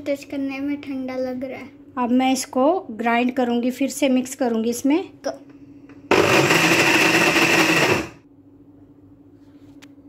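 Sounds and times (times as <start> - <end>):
electric mixer grinder running: 6.1 - 8.2.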